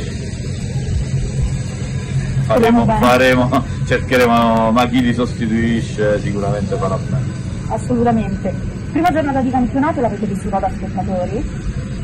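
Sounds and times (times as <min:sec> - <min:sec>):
distant tractor engine running: 0:00.0 - 0:12.0.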